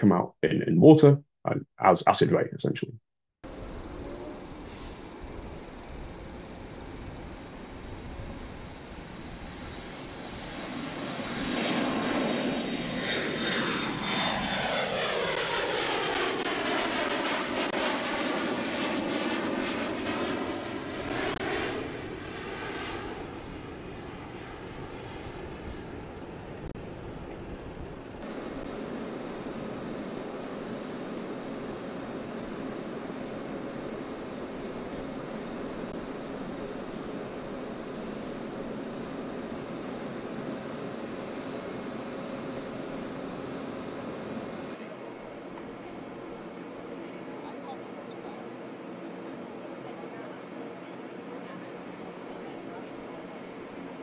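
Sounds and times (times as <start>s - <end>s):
jet airliner passing overhead: 3.5s - 54.0s.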